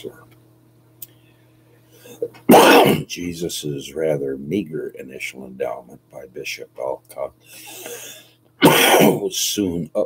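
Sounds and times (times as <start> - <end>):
faint steady hum: 0.0 - 10.0
man coughing: 2.1 - 3.1, 7.6 - 9.3.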